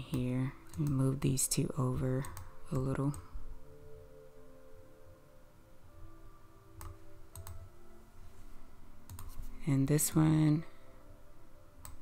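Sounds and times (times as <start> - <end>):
soft background music: 0.0 - 12.0
computer mouse clicks: 0.1 - 1.0, 6.8 - 7.6, 9.1 - 9.4, 11.8 - 12.0.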